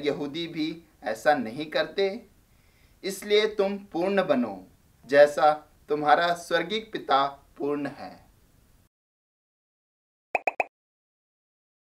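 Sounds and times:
pitched pop blips: 10.4 - 10.7.

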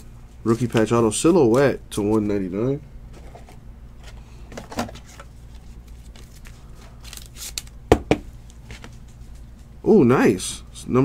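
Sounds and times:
steady low hum: 0.0 - 11.0
cards rustling and shuffling: 3.2 - 7.8.

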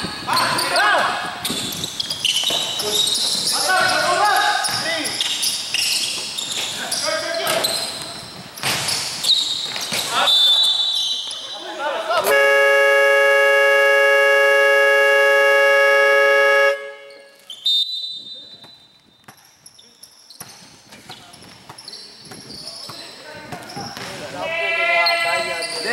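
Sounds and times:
scoreboard buzzer tone: 12.3 - 17.4
short high whistle: 17.1 - 18.6.

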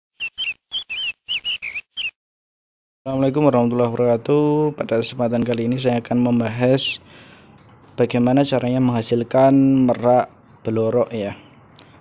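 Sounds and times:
small bird chirping: 0.2 - 2.2.

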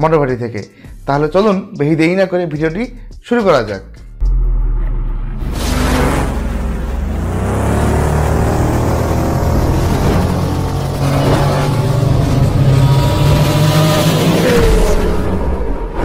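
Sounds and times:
motorbike engine revving: 4.2 - 16.0.

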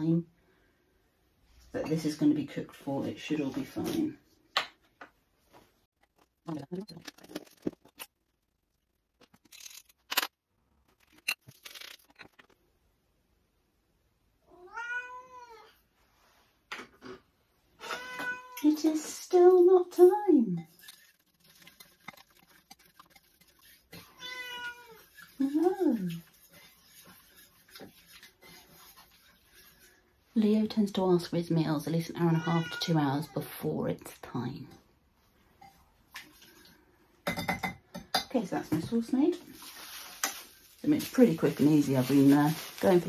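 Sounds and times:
kitchen items clicking: 6.0 - 8.1, 9.2 - 10.3
cat meowing: 14.5 - 15.8, 17.8 - 18.6, 24.0 - 25.1, 32.2 - 33.4.

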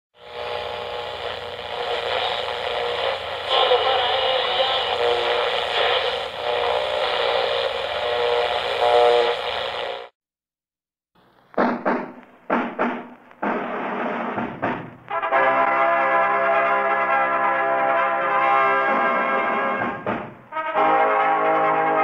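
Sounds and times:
radio static and hiss: 0.2 - 10.1.

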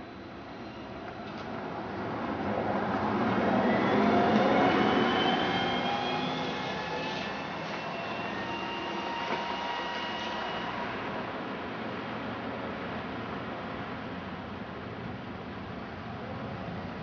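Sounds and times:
trolleybus traction whine: 0.0 - 17.0.

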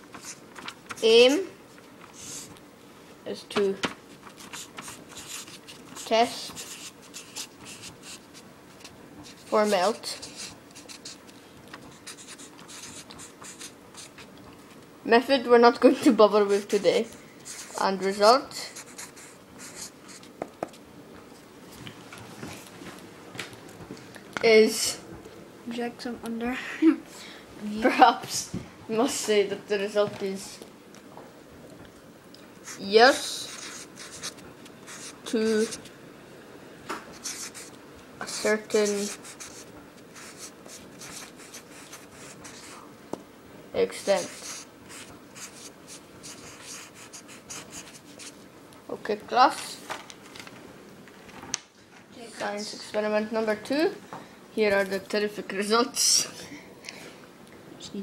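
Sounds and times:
marker pen writing on paper: 0.1 - 1.4, 2.1 - 2.6, 4.2 - 14.3, 16.5 - 20.8, 32.6 - 35.9, 37.1 - 42.8, 44.0 - 48.4.

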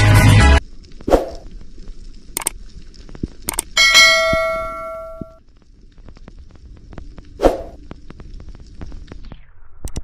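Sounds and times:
notification bell ding: 3.8 - 5.4.

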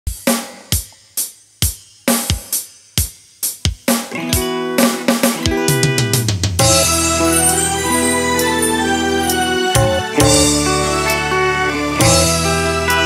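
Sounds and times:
drum fill: 0.1 - 8.6, 9.7 - 11.2
drum hits: 1.6 - 7.2, 9.8 - 10.8
keyboard chords: 4.1 - 13.0.

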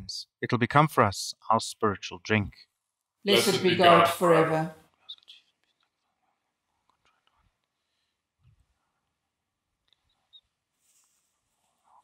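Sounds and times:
faint whispering prayer: 4.9 - 5.7.

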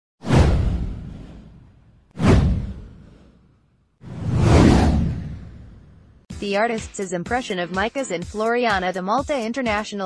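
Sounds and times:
whoosh with low rumble: 0.2 - 6.3.

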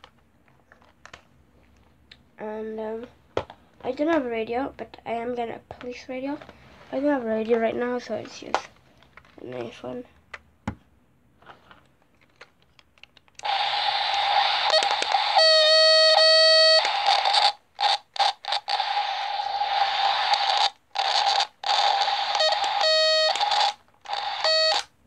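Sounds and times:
toy radio static hiss: 13.4 - 24.9
electronic beep: 22.3 - 23.7, 24.4 - 24.8.

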